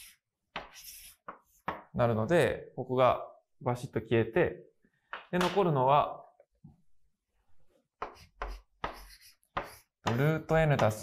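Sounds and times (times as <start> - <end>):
chalk scraping on blackboard: 0.0 - 1.7, 8.0 - 10.4.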